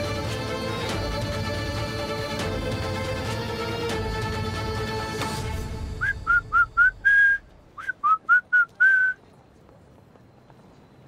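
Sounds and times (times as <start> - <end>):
person whistling: 6.0 - 9.2.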